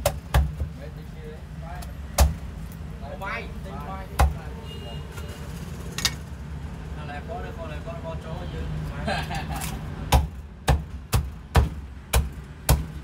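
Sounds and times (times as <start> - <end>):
knife chopping on wooden block: 0.0 - 0.8, 2.2 - 2.4, 10.1 - 13.0.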